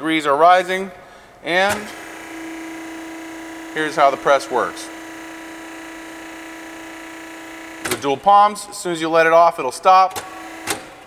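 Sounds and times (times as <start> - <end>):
hydraulic pump humming: 0.7 - 8.9, 10.1 - 11.0.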